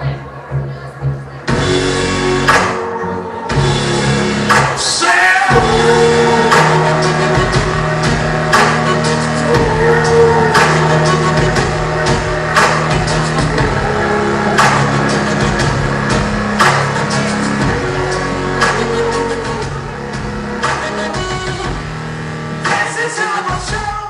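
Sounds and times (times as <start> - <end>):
loud dance music: 0.0 - 24.0.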